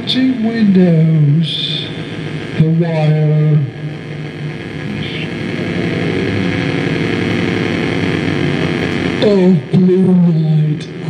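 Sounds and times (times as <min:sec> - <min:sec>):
buzzing synthesizer drone: 0:00.0 - 0:11.0.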